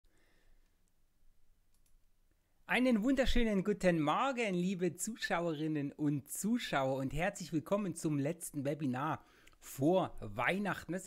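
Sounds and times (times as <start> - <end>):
faint clicks: 1.7 - 2.0.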